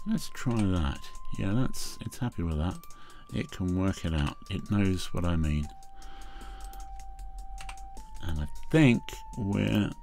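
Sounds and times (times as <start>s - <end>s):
keyboard keys clicking: 0.4s - 1.4s, 2.4s - 5.9s, 6.5s - 8.6s.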